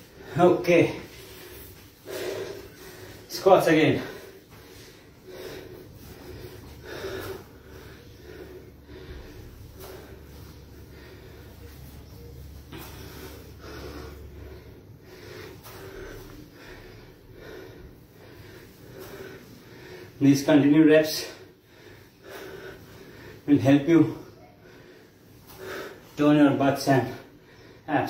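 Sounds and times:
man breathing hard: 0.0s - 28.0s.

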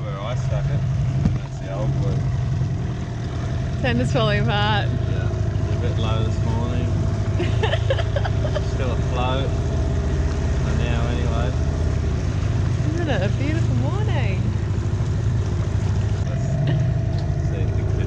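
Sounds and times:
outboard motor running: 0.0s - 18.0s.

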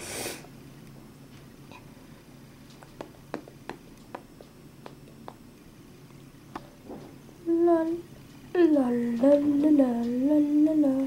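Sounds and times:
person singing wordless tune: 7.4s - 11.0s.

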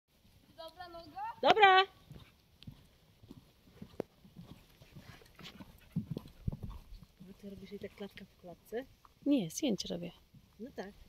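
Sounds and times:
horse hoofbeats on sand: 0.2s - 11.0s.

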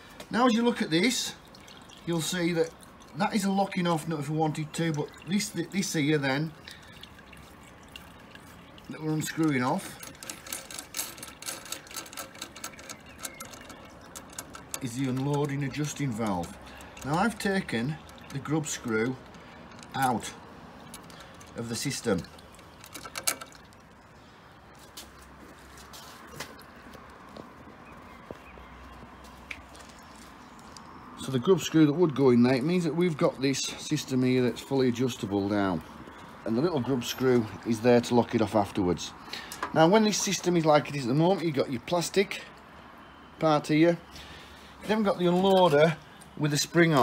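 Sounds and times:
small metal ticks: 6.6s - 24.1s
light clicks of small metal parts: 9.4s - 24.0s.

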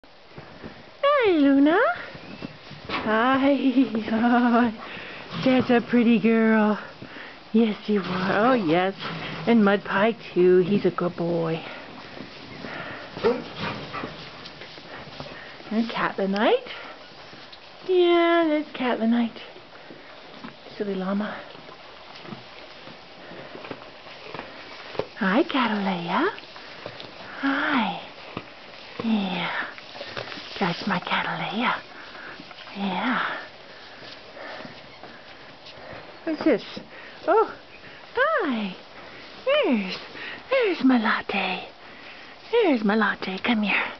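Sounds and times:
faint rustling: 0.1s - 43.9s
animal sniffing: 11.6s - 17.8s, 21.4s - 38.1s.

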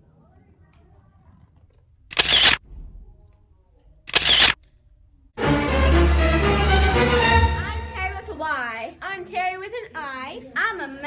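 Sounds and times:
camera shutter click: 2.1s - 2.6s, 4.1s - 4.6s.

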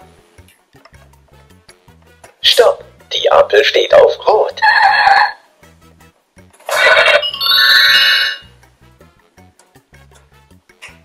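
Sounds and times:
toy electronic sound effect: 4.6s - 5.4s, 6.7s - 8.5s.

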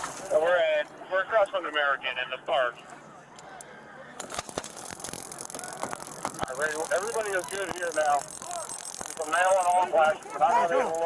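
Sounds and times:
camera and gear rattling: 4.2s - 11.0s
steady noise: 4.3s - 10.0s.

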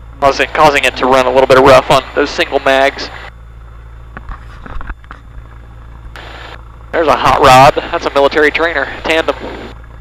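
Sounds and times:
airplane engine humming: 0.0s - 10.0s.

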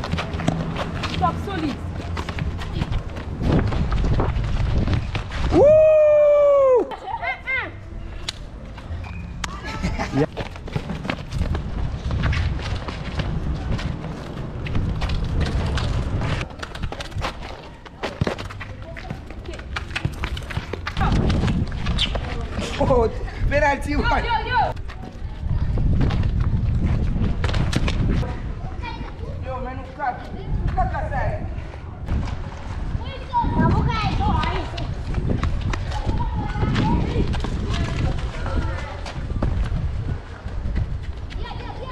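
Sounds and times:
footsteps on concrete: 0.0s - 5.7s, 10.2s - 23.1s, 24.0s - 28.3s, 29.8s - 41.9s
wind rumbling on microphone: 1.9s - 6.8s, 10.8s - 17.5s, 20.3s - 41.9s
children's voices: 32.9s - 35.1s, 35.8s - 39.3s, 41.3s - 41.9s.

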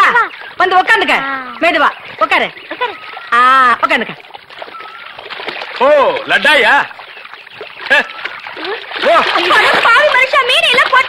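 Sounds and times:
river water splashing: 0.0s - 11.0s.

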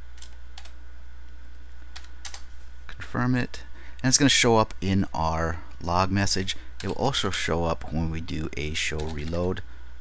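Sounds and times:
steady low hum: 0.0s - 10.0s
computer keyboard keystrokes: 0.2s - 0.8s, 1.9s - 2.5s, 8.9s - 9.4s.

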